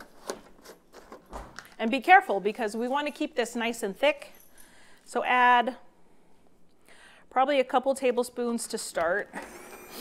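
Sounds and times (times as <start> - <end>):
woman speaking: 1.8 - 4.4, 5.1 - 5.9, 7.3 - 9.3.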